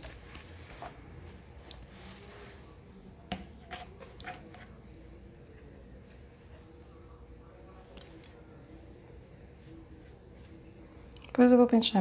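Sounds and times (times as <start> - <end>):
faint rustling of yarn: 0.0 - 2.8.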